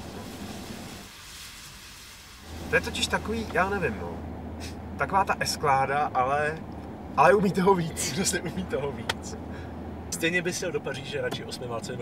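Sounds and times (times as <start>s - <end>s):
car tyre and road noise: 0.0s - 12.0s.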